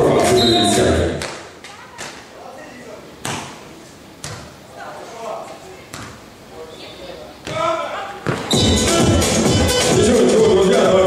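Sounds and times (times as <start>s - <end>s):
volleyball struck by hand: 3.2s - 3.6s
loud arena music: 8.5s - 11.0s.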